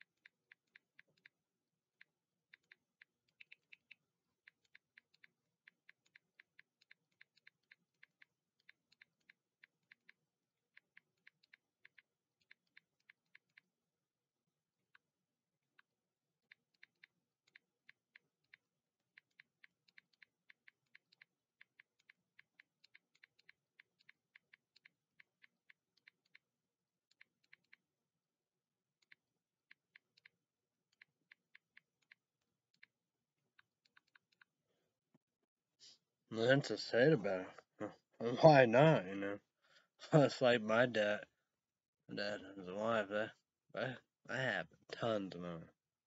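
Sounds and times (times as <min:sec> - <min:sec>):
typing on keyboard: 0:00.0 - 0:14.0, 0:14.8 - 0:28.0
typing on computer keyboard: 0:15.6 - 0:27.9.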